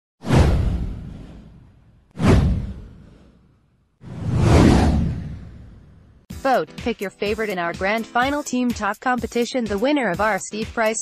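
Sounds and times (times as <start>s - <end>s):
whoosh sweeping into deep boom: 0.2s - 6.3s.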